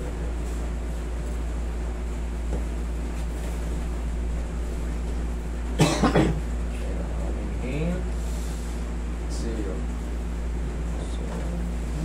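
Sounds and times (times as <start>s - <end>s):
low room hum: 0.0s - 12.0s
person coughing: 5.8s - 6.5s.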